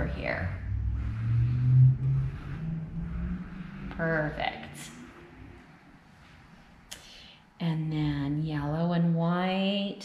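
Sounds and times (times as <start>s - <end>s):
low motor hum: 0.0s - 6.9s.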